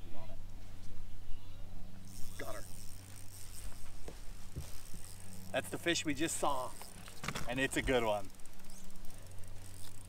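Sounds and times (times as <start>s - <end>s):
electric trolling motor humming: 1.7s - 10.0s.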